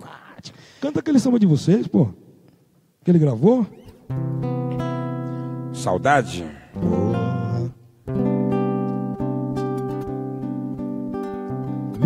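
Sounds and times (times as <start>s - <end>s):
nylon-string guitar samba chords: 3.7s - 12.0s.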